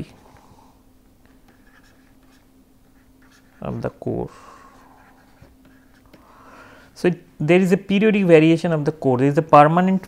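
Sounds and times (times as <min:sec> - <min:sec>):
low steady hum: 0:00.0 - 0:10.0
stylus scratching on tablet: 0:01.3 - 0:06.3.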